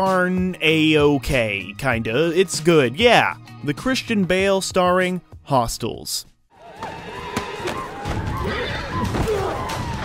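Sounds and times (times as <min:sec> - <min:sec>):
hoofbeats: 0:06.6 - 0:10.0
horse whinnying: 0:07.2 - 0:10.0.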